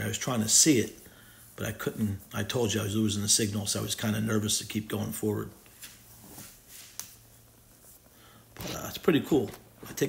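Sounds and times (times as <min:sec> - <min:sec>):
soft faint noise: 0:00.0 - 0:10.0.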